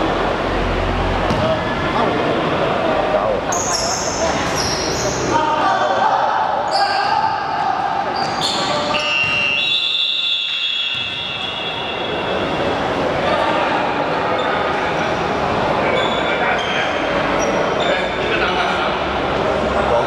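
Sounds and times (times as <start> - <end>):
basketball bouncing: 1.3 - 1.6
sneakers squeaking: 1.3 - 1.7, 3.5 - 5.4, 6.6 - 12.6, 15.9 - 18.2
referee's whistle blast: 8.4 - 12.3.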